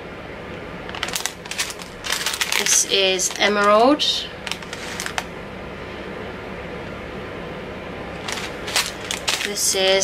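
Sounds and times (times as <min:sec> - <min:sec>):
steady background hum: 0:00.0 - 0:10.0
plastic bag rustling and crinkling: 0:00.9 - 0:05.3, 0:08.2 - 0:10.0.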